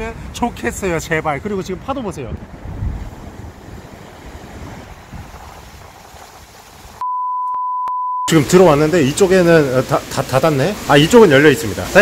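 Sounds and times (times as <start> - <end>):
wind buffeting microphone: 0.0 - 7.0
waves breaking in surf: 2.5 - 7.0, 8.3 - 12.0.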